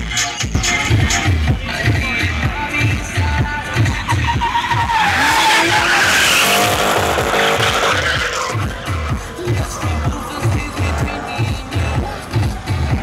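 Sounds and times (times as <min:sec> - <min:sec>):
electronic music with steady beat: 0:00.0 - 0:13.0
car engine revving: 0:00.6 - 0:13.0
tyres skidding and squealing: 0:00.6 - 0:13.0.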